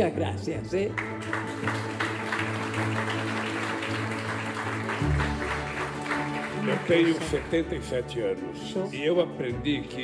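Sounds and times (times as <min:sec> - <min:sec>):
background music: 0:00.0 - 0:10.0
people applauding: 0:00.8 - 0:08.3.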